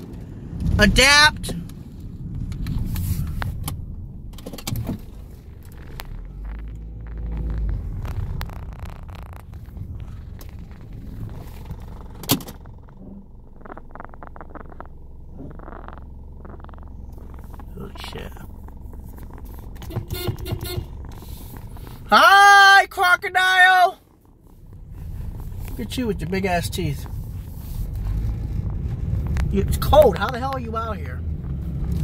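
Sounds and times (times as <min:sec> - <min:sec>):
car engine and road rumble: 0:00.0 - 0:32.0.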